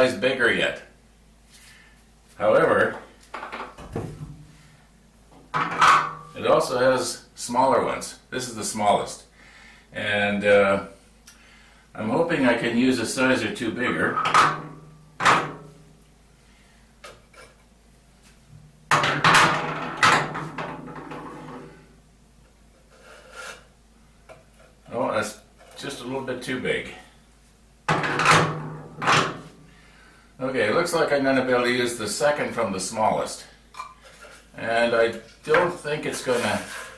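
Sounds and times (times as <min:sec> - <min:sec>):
sanding drums clattering: 0:36.0 - 0:36.9.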